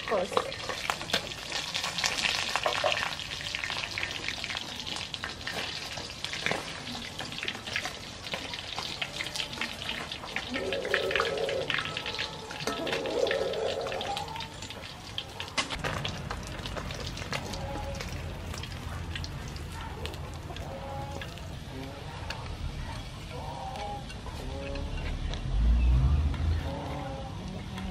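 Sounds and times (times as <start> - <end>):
fish sizzling in hot oil: 0.0 - 20.6.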